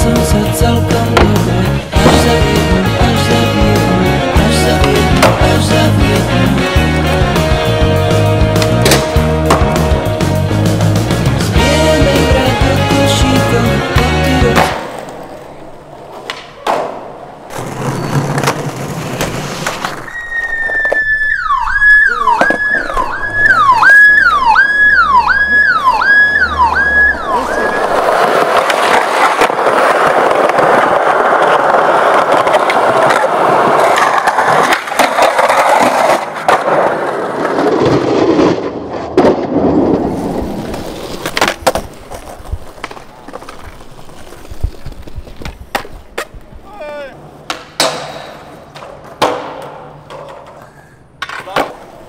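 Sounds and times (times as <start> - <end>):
skateboard wheels rolling on concrete: 0.0 - 52.0
skateboard clacks: 0.9 - 6.3, 8.2 - 10.1, 14.2 - 21.2, 21.9 - 24.2, 26.9 - 46.5, 47.4 - 52.0
skateboard grinding a ledge: 1.0 - 11.0, 14.2 - 21.2, 26.9 - 46.4.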